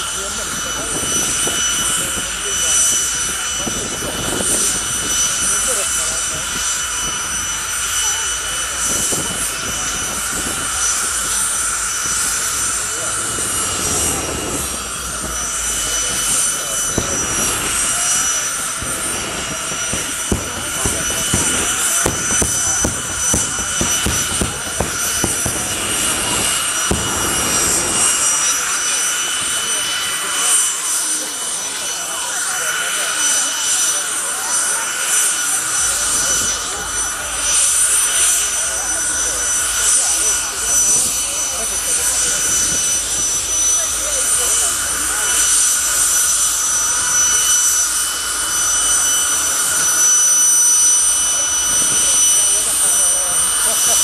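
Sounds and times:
turbine engine whine: 0.0 - 54.0
exhaust crackles and pops: 0.6 - 28.8.

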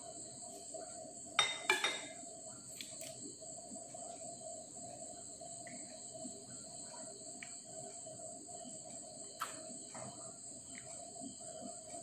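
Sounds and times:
spoon clinking against glass bowl: 1.4 - 2.2.

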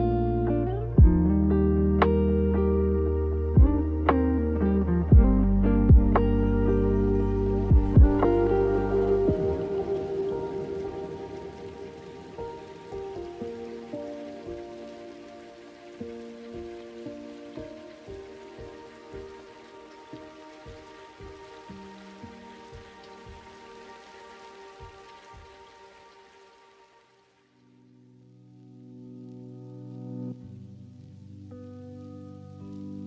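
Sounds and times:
rain falling: 0.0 - 33.0
soft ambient instrumental music: 0.0 - 33.0.

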